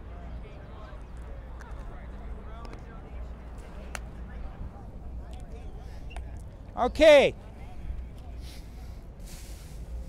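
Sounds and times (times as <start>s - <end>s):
faint background chatter: 0.0s - 10.0s
low traffic rumble: 0.0s - 10.0s.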